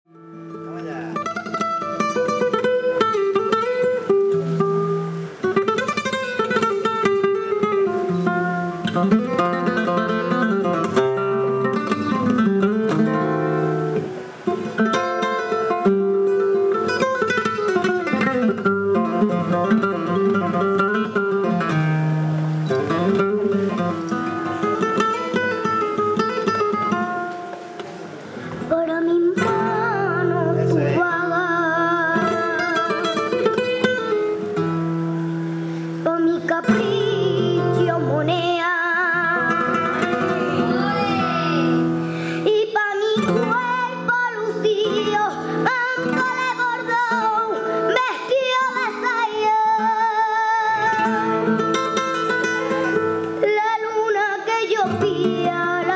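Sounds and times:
flamenco acoustic guitar: 0.1s - 55.9s.

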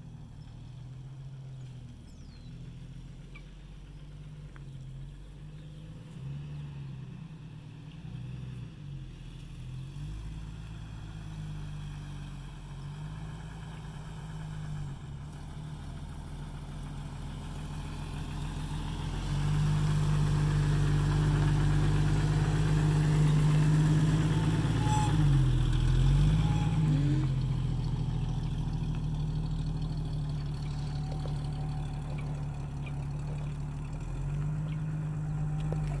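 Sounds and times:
car engine idling: 0.0s - 36.0s.

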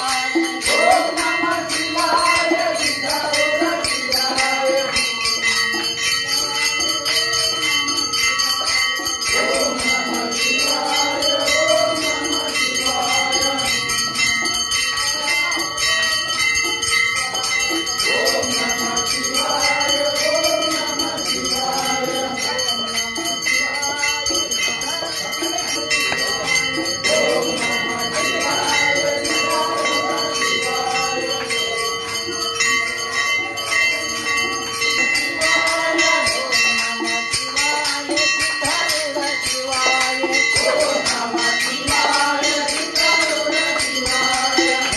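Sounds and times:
men singing devotional song: 0.0s - 44.9s
small hand cymbals jingling: 0.0s - 44.9s.

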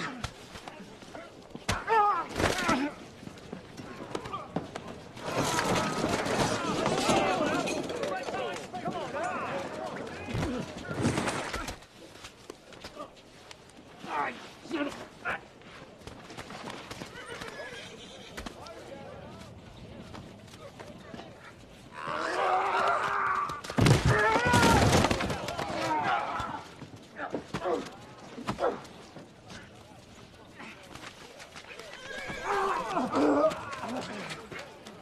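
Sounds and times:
horse hooves clopping: 14.7s - 23.8s, 24.7s - 35.0s
horse whinnying: 31.9s - 33.8s.

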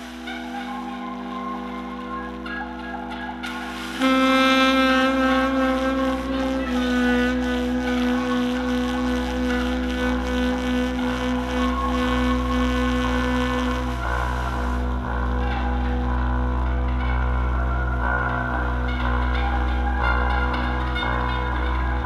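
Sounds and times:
saxophone drone tones: 0.0s - 22.0s
steady low hum: 0.0s - 22.0s.

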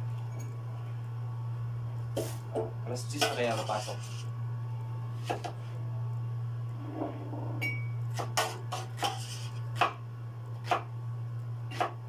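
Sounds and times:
low hum: 5.9s - 8.1s
knife chopping tomatoes: 8.1s - 10.0s, 10.6s - 10.9s, 11.7s - 12.0s.

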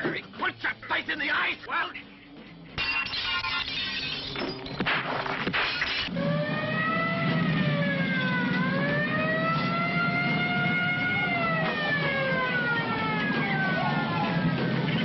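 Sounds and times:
wailing siren: 6.1s - 15.0s.

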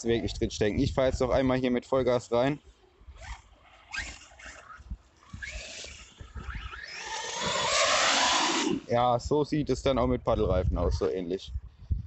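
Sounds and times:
electric toy truck motor whine: 3.2s - 8.9s.

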